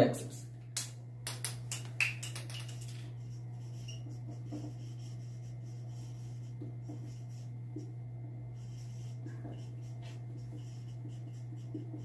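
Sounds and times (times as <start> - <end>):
steady low hum: 0.0 - 12.0
marker pen squeaking on whiteboard: 3.2 - 7.9, 8.6 - 12.0.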